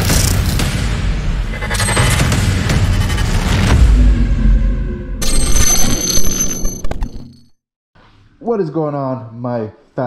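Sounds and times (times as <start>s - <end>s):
deep bass rumble: 1.4s - 5.2s.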